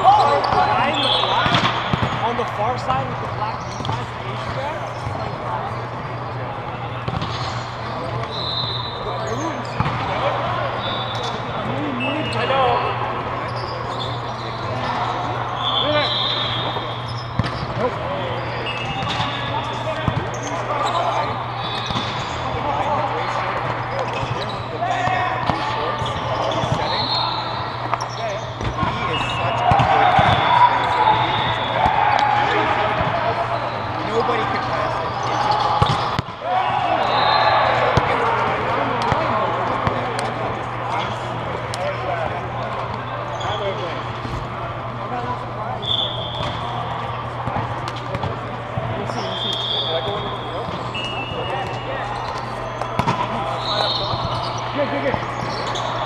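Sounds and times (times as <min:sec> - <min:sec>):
sneaker squeaks on court: 0:00.1 - 0:12.8, 0:13.4 - 0:32.0, 0:33.0 - 0:36.4, 0:45.8 - 0:56.0
volleyball being hit and bounced: 0:01.4 - 0:02.4, 0:07.0 - 0:07.6, 0:09.8 - 0:10.2, 0:17.3 - 0:18.0, 0:28.6 - 0:30.6, 0:35.6 - 0:36.4, 0:38.9 - 0:40.3, 0:46.3 - 0:49.2, 0:50.0 - 0:54.4.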